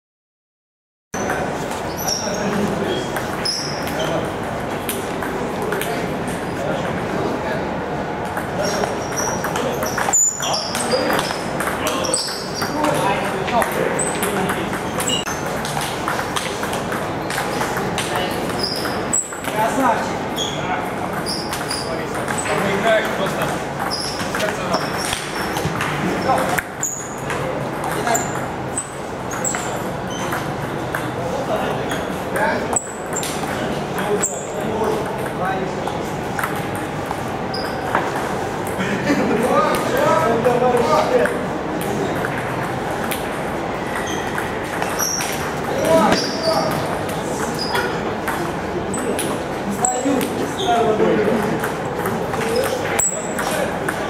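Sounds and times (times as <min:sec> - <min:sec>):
murmur of voices: 0:01.2 - 0:54.0
table tennis ball pings: 0:08.2 - 0:19.6, 0:36.3 - 0:38.8, 0:40.7 - 0:50.4
table tennis ball clicks: 0:41.2 - 0:48.5.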